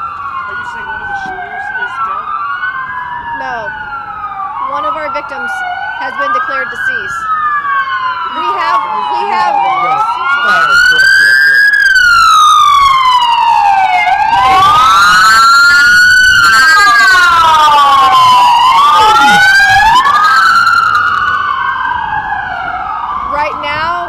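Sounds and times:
emergency sirens wailing: 0:00.0 - 0:24.0.

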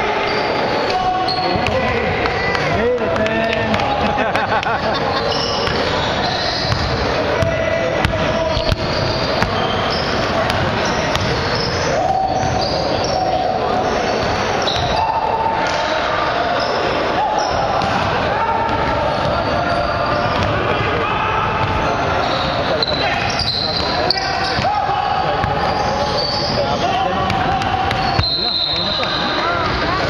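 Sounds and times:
voices echoing in gymnasium: 0:00.0 - 0:30.0
basketball bouncing on wooden floor: 0:06.6 - 0:09.6.

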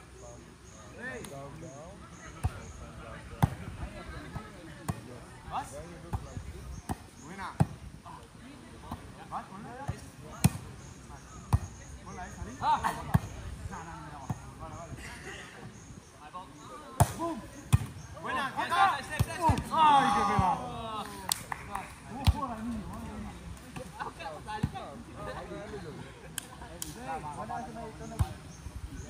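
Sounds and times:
players calling out: 0:16.8 - 0:23.0.

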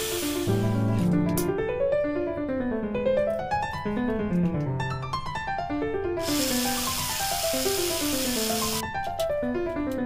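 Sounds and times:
electric drill boring into bamboo: 0:00.0 - 0:00.6, 0:06.2 - 0:08.8
piano music: 0:00.0 - 0:10.0.

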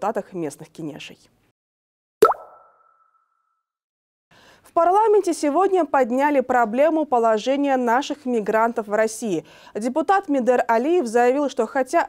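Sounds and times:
pop sweeping upward in pitch: 0:02.2 - 0:03.4.

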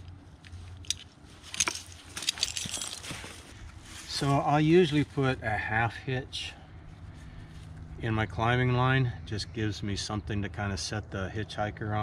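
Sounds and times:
rope rustling: 0:00.0 - 0:05.2
metal climbing hardware clinking: 0:00.4 - 0:03.4.

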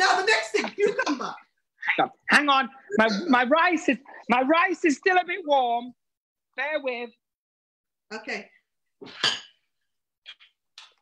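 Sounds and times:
kitchenware clattering: 0:09.0 - 0:09.8.

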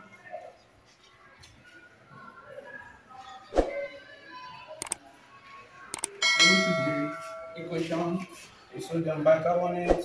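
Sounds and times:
mouse clicks: 0:04.8 - 0:05.0, 0:05.9 - 0:06.2
bell ringing: 0:06.2 - 0:07.9.

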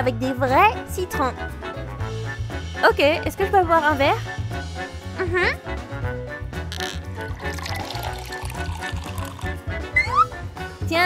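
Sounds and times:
background music with steady beat: 0:00.0 - 0:11.0
liquid pouring into glass bottle: 0:06.7 - 0:09.8.

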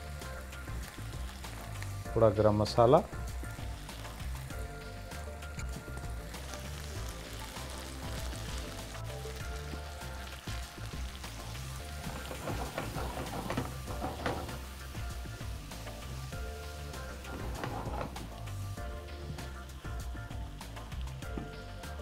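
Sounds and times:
gravy sizzling in a pan: 0:00.0 - 0:22.0
soft background music: 0:00.0 - 0:22.0
water pouring: 0:06.9 - 0:15.0, 0:17.0 - 0:18.8
spatula stirring: 0:11.6 - 0:14.8, 0:17.0 - 0:18.5.

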